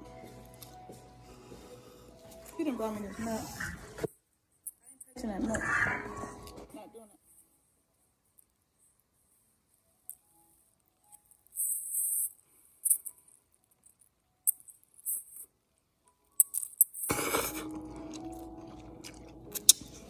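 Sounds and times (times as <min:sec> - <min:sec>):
background music with held notes: 0:00.0 - 0:04.1, 0:05.2 - 0:07.6, 0:16.0 - 0:20.0
slurping and chewing noodles: 0:17.0 - 0:20.0.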